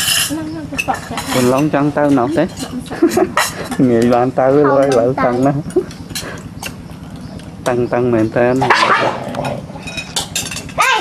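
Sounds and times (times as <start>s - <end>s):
spoons clinking on china: 0.0s - 1.7s
loud talking: 0.3s - 6.4s.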